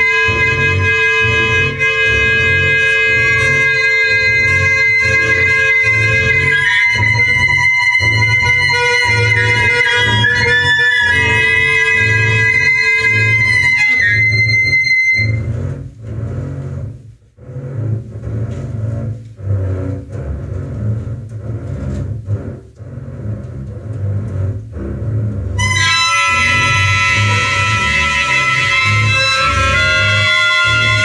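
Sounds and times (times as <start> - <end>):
clarinet: 0.0 - 31.0
double bass playing low notes: 0.0 - 31.0
saxophone: 0.0 - 31.0.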